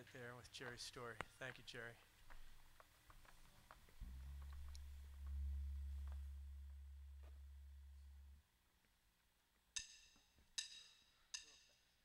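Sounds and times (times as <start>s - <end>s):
low hum: 4.0s - 8.6s.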